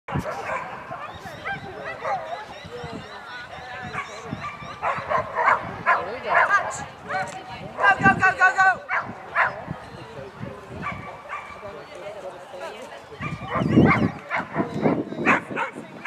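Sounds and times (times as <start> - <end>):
dog barking and yipping: 0.1 - 2.4, 4.0 - 6.7.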